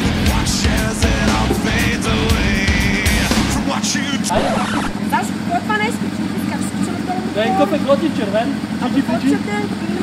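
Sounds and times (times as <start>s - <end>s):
motorcycle engine idling: 0.0s - 10.0s
voices talking: 3.0s - 7.8s.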